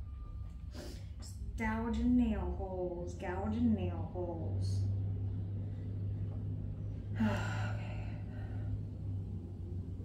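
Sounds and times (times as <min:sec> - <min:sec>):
pottery wheel humming: 0:01.4 - 0:10.0.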